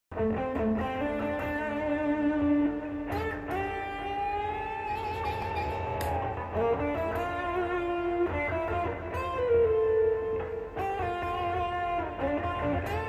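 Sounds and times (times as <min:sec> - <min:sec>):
electric guitar lead solo: 0:00.1 - 0:13.0.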